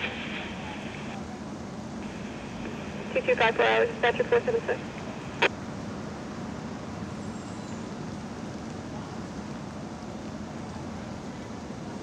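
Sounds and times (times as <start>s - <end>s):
radio hiss: 0.0s - 1.2s, 2.0s - 5.5s
fire engine rumbling: 0.0s - 12.0s.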